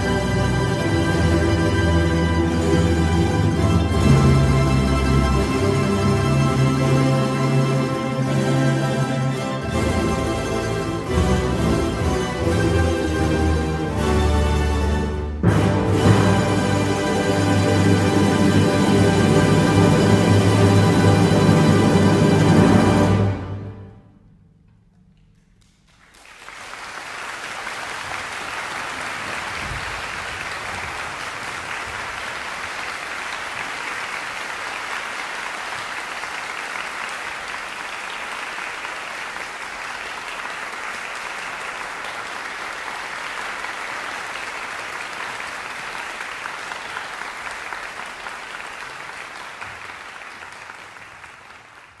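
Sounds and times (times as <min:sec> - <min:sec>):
audience applauding: 0:25.6 - 0:52.0.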